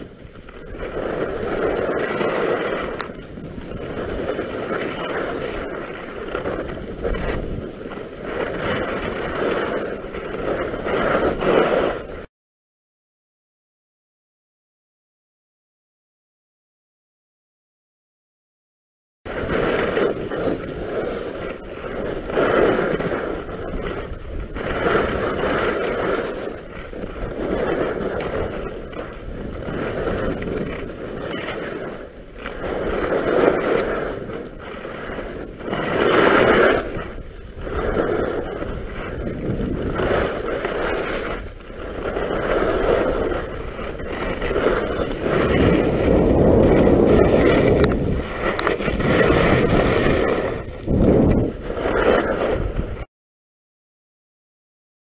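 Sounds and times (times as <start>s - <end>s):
skis scraping packed snow: 0.0s - 12.3s, 19.3s - 53.1s
wind rumbling on microphone: 0.0s - 12.3s, 19.3s - 53.1s.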